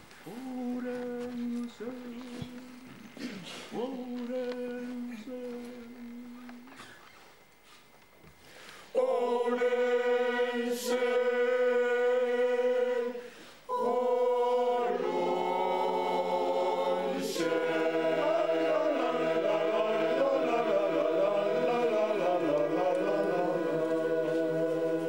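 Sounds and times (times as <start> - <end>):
mixed choir singing a cappella: 8.9 - 25.0.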